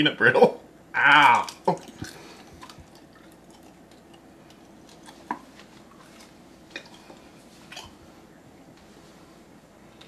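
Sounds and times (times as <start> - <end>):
person chewing sticky snack: 1.0 - 8.0.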